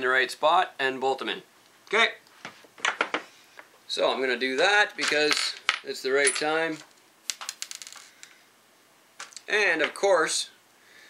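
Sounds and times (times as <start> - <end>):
small metal screws clicking: 7.3 - 8.3.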